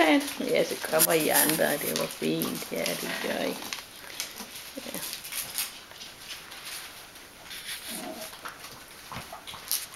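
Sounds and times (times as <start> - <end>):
puppy low vocal sound: 7.8 - 8.4.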